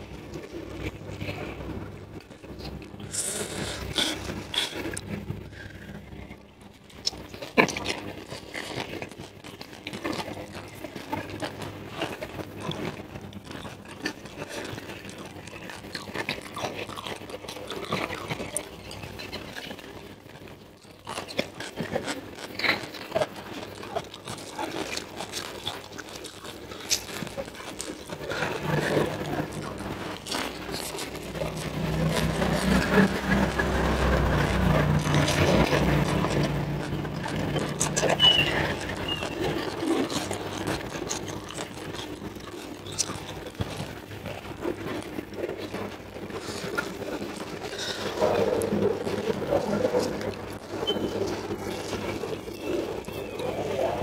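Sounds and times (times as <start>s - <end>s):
chewing and crunching food: 0.0s - 54.0s.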